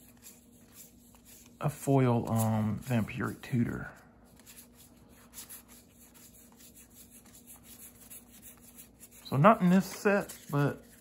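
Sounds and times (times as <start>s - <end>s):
faint steady hum: 0.0s - 11.0s
trading cards rubbing and sliding: 0.0s - 11.0s.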